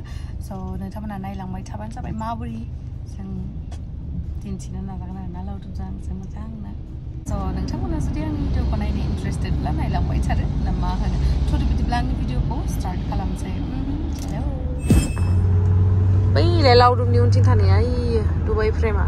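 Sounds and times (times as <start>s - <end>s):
woman talking: 0.0s - 3.7s, 4.4s - 14.8s, 16.3s - 19.0s
road and engine rumble: 0.0s - 19.0s.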